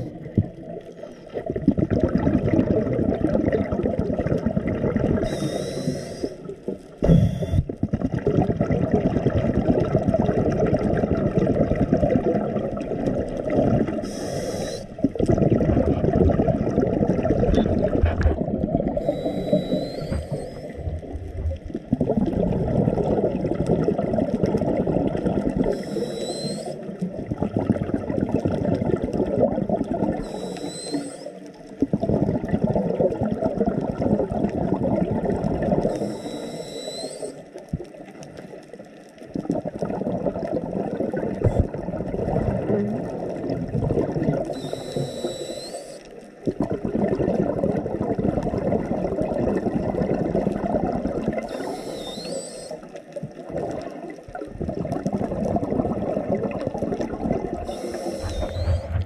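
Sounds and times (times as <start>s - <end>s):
exhaled bubbles rushing: 0.0s - 59.0s
diver inhaling through regulator: 5.2s - 7.7s, 14.0s - 15.0s, 18.9s - 20.9s, 25.6s - 26.8s, 30.2s - 31.4s, 35.8s - 37.4s, 44.6s - 46.1s, 51.5s - 52.8s, 57.6s - 59.0s.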